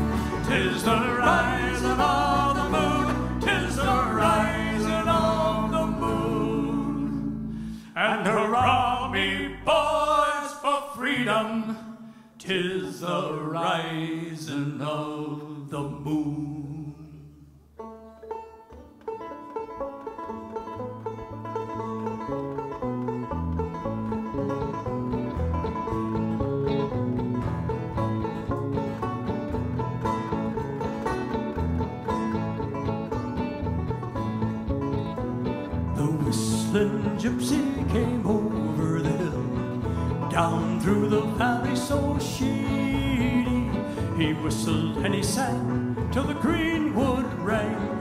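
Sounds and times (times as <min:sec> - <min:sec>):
acoustic guitar: 0:00.0 - 0:48.0
banjo: 0:00.0 - 0:48.0.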